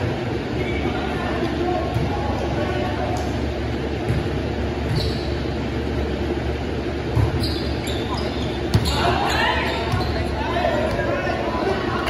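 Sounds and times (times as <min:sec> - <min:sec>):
steady low hum: 0:00.0 - 0:12.0
players calling out: 0:07.0 - 0:12.0.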